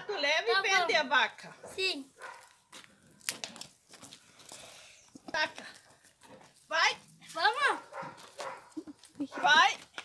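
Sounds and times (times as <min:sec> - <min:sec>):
dog barking: 0:01.6 - 0:02.6, 0:07.7 - 0:09.6.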